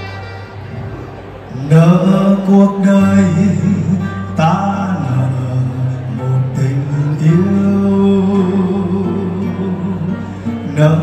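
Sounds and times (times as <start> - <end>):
man singing into microphone: 1.5 - 11.0.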